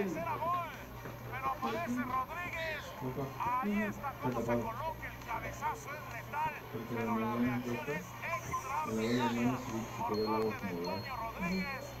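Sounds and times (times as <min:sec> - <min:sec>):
faint background music: 0:00.0 - 0:12.0
steady low hum: 0:00.0 - 0:12.0
person talking: 0:01.4 - 0:12.0.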